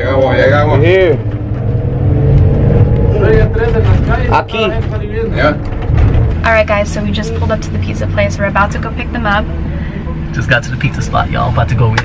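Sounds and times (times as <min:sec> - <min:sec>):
truck engine and road rumble: 0:00.0 - 0:12.0
people talking: 0:03.1 - 0:05.6, 0:06.4 - 0:12.0.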